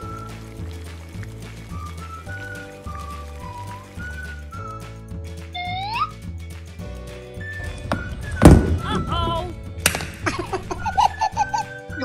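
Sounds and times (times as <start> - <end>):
background music: 0.0 - 12.0
loud thunk: 7.6 - 9.2.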